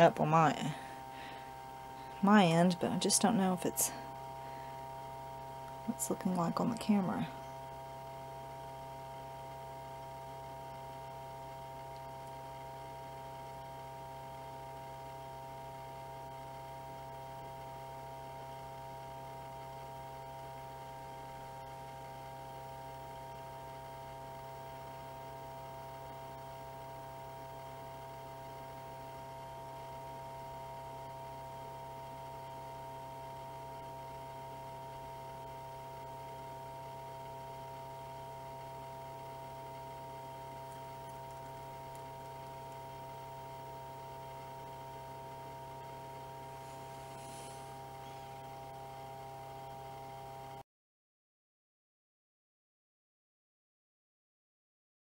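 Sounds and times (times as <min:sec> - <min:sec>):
electrical hum: 0:00.0 - 0:50.6
faint hiss: 0:45.9 - 0:48.7.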